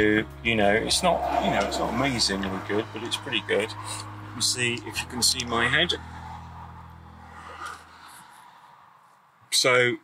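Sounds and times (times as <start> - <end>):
low car cabin hum: 0.6 - 7.2.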